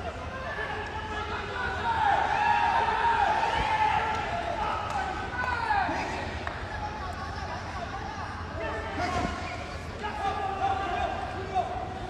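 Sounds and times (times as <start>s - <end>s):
voices shouting in a hall: 0.0s - 12.0s.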